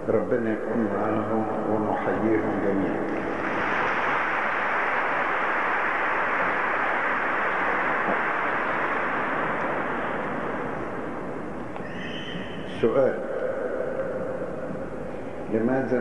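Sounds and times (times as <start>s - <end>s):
large audience applauding: 3.1s - 11.8s.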